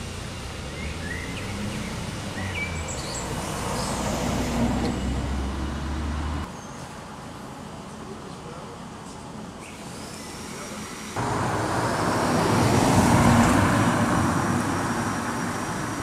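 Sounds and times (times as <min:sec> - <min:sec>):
birds chirping: 0:00.6 - 0:05.8
car driving past: 0:00.7 - 0:06.5, 0:11.2 - 0:16.0.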